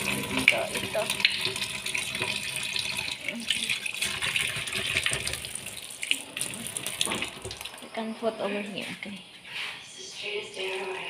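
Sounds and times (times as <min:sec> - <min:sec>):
tap water splashing into sink: 0:00.0 - 0:07.8.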